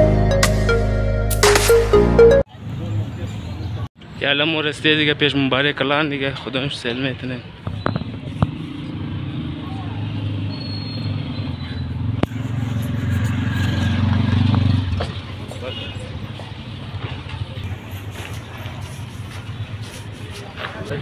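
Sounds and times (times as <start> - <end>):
auto-rickshaw engine running: 8.0 - 21.0.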